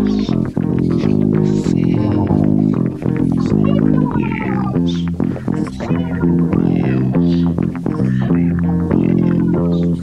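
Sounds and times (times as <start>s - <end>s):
instrumental rock music: 0.0s - 10.0s.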